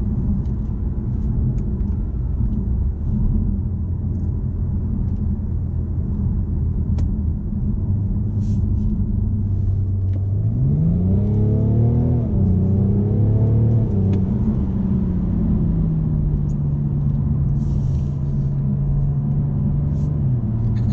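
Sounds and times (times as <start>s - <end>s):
car engine accelerating: 0.0s - 20.9s.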